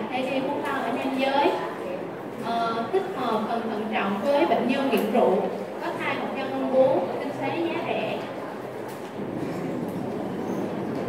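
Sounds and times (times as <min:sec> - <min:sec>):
lecture room background rushing noise: 0:00.0 - 0:11.0.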